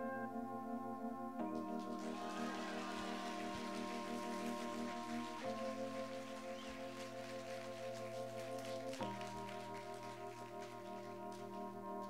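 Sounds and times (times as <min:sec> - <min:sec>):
band holding sustained chords: 0:00.0 - 0:12.0.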